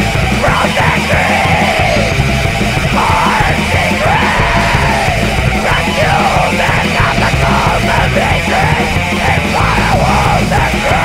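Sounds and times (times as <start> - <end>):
extreme metal song: 0.0 - 11.0
harsh yelled vocal: 0.0 - 11.0.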